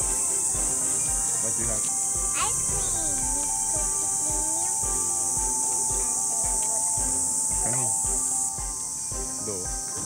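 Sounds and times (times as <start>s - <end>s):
cicadas chorus: 0.0s - 10.0s
music with steady low beat: 0.0s - 10.0s.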